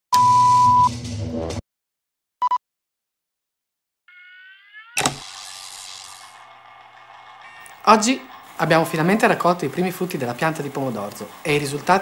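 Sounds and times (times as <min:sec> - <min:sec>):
static hiss: 0:05.0 - 0:06.5.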